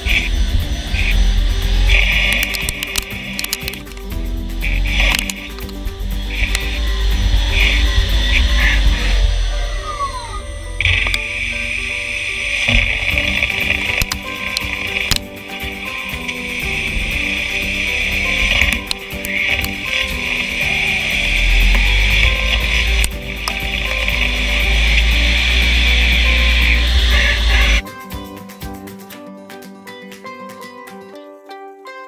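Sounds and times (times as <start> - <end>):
lathe cutting hiss: 0.0 - 27.8
background music: 0.0 - 32.0.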